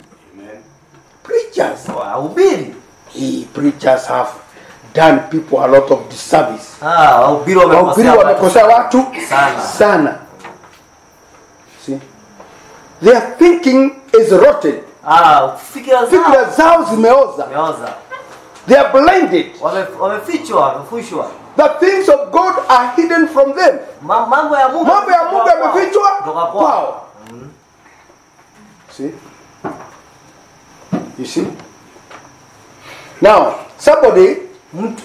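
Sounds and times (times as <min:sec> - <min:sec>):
crickets chirring: 0:00.0 - 0:35.0.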